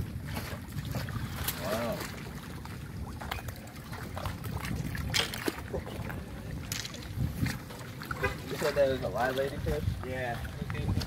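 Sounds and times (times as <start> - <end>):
water splashing against a seawall: 0.0 - 11.0
wind rumbling on microphone: 0.0 - 11.0.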